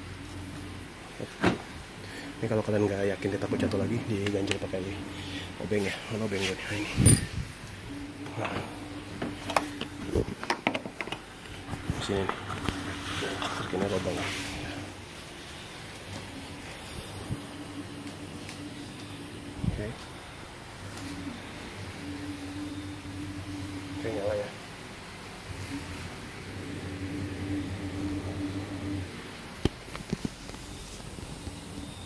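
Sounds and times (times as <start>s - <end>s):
constant tone: 0.0s - 32.0s
faint steady hum: 0.0s - 32.0s.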